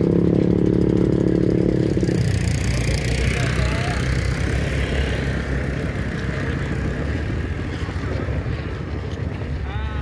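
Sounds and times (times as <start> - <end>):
small engine idling: 0.0 - 8.6.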